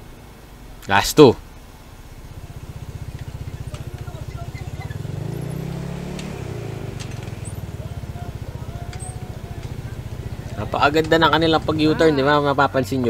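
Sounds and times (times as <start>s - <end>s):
engine idling: 1.4s - 13.0s.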